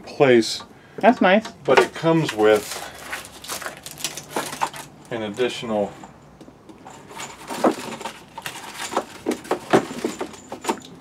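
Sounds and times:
hands rummaging through packaging: 1.8s - 5.5s, 6.8s - 11.0s.

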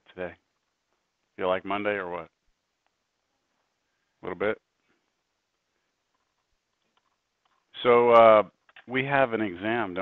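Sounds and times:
man speaking: 0.0s - 0.4s, 1.4s - 2.3s, 4.2s - 4.6s, 7.8s - 10.0s
very faint clicks: 2.8s - 3.7s.

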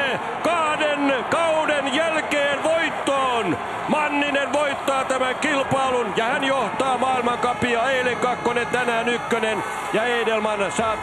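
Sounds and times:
sports commentator talking: 0.0s - 11.0s.

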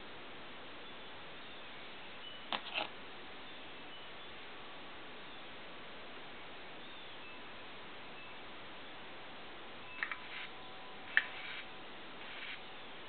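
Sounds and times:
low recording hiss: 0.0s - 13.0s.

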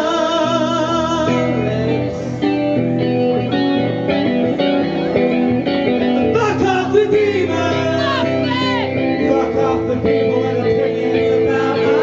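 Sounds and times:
electric guitar melody: 0.0s - 12.0s
live rock band playing: 0.0s - 12.0s.

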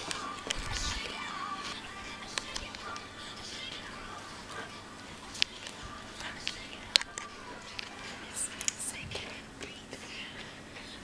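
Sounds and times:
faint whispering: 0.0s - 11.0s.

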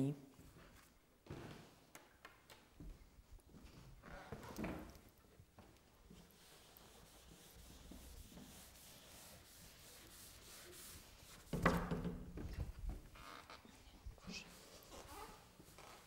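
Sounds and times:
eraser scrubbing a chalkboard: 6.1s - 11.6s.

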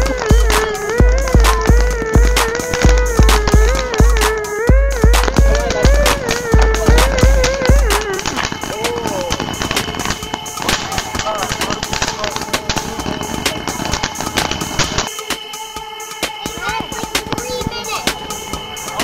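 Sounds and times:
person singing: 0.0s - 8.2s
firework fountain crackling: 0.0s - 19.0s
music with heavy bass beat: 0.0s - 19.0s.

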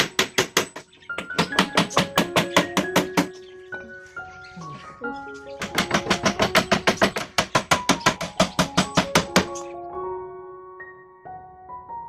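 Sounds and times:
hammer nailing wood: 0.0s - 3.4s, 5.6s - 9.6s
piano music: 0.0s - 12.0s.

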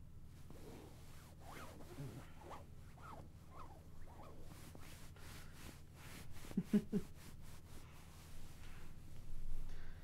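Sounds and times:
scratching strokes: 0.6s - 9.2s.

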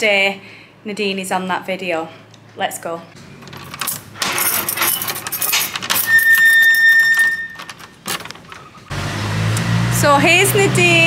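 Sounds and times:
key working in lock: 3.4s - 8.7s
keys jangling: 3.5s - 8.7s
high squeal: 6.0s - 7.7s
low traffic rumble: 7.8s - 11.0s.

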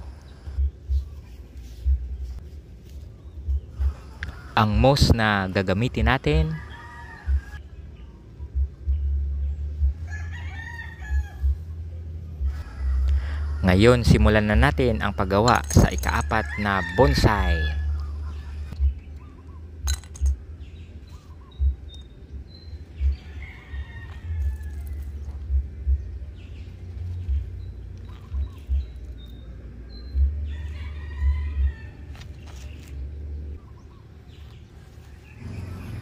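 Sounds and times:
soft low thumps: 0.5s - 1.2s, 1.8s - 2.5s, 3.4s - 4.0s, 8.5s - 10.1s, 18.7s - 19.1s, 21.6s - 21.9s, 25.4s - 26.3s, 30.1s - 30.5s
stones dropped into ceramic pot: 15.4s - 16.5s, 19.8s - 20.4s.

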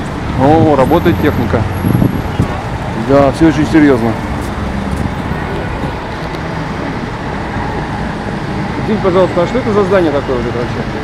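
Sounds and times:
city road traffic: 0.0s - 11.0s.

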